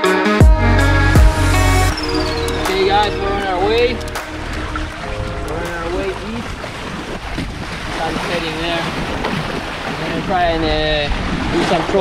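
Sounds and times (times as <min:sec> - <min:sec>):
water splashing along hulls: 0:01.4 - 0:12.0
wind on microphone: 0:01.9 - 0:12.0.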